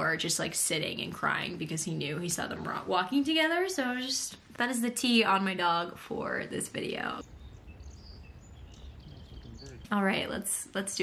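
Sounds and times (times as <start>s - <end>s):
faint bird chirps: 7.2s - 10.4s.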